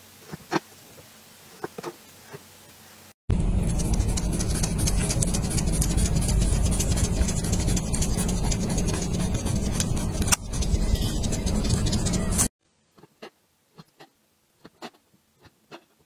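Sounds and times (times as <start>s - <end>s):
low machine rumble: 3.3s - 12.5s.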